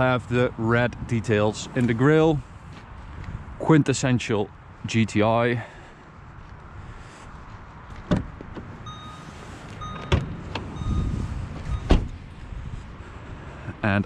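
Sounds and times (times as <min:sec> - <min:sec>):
short beeps: 0:08.9 - 0:10.2, 0:10.8 - 0:12.0.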